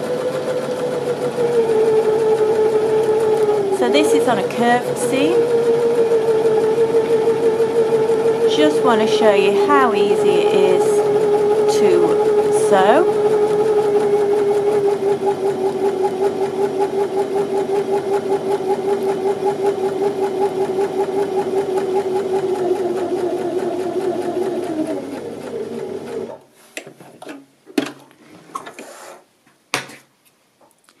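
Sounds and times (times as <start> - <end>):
sewing machine whirring: 0.0 - 26.4.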